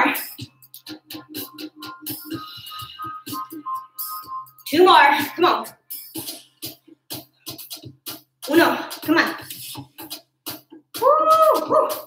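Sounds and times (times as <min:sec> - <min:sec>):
background music with drum beat: 0:00.0 - 0:12.0.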